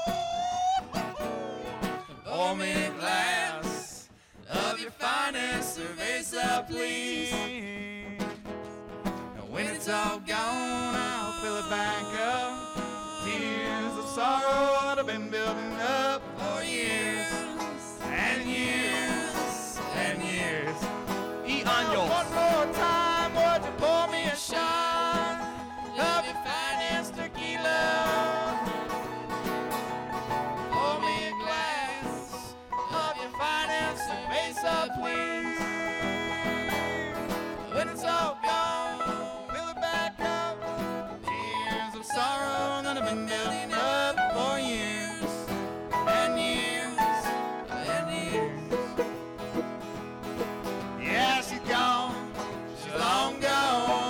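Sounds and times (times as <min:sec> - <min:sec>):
voices singing: 0:00.0 - 0:07.9, 0:09.4 - 0:29.3, 0:30.2 - 0:49.1, 0:51.0 - 0:54.0
bluegrass band playing: 0:00.0 - 0:54.0.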